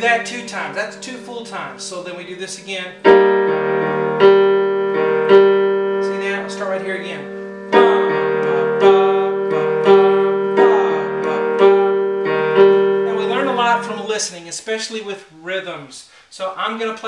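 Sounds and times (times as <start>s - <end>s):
piano playing slow minor chords: 0.0s - 14.4s.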